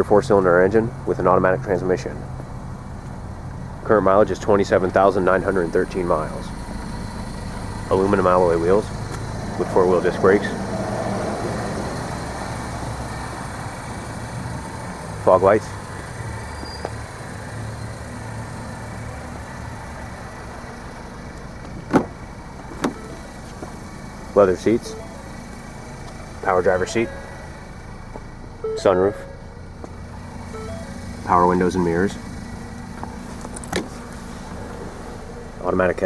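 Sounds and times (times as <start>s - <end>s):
vehicle engine idling: 0.0s - 36.0s.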